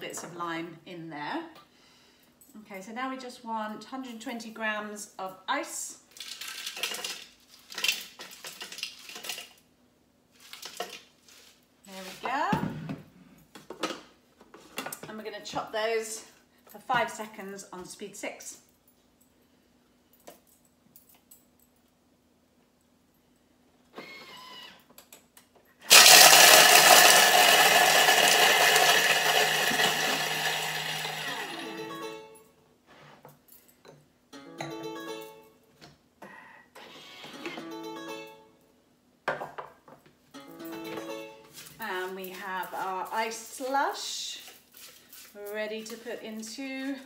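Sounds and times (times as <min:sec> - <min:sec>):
kitchen machine crushing ice: 0:25.8 - 0:31.8
loud grinding rattle: 0:25.9 - 0:31.6.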